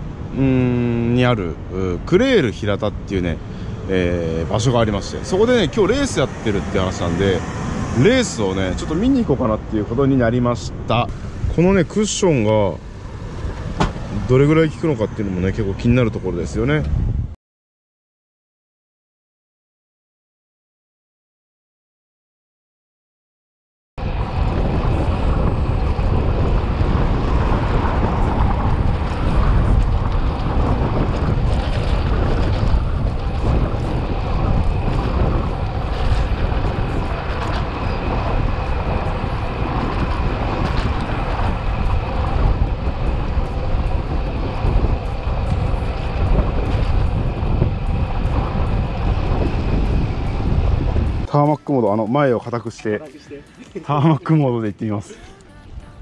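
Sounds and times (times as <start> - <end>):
road noise from bike tyres: 0.0 - 17.4, 24.0 - 55.1
wind buffeting microphone: 0.0 - 17.4, 24.0 - 51.8.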